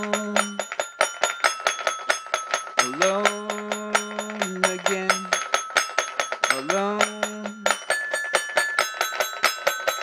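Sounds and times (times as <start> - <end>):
bell-like high note: 0.0 - 10.0
fast clicking beat: 0.0 - 10.0.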